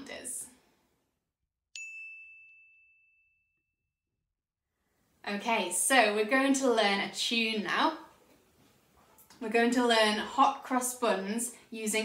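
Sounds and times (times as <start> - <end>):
high bell-like chime: 1.8 - 3.7.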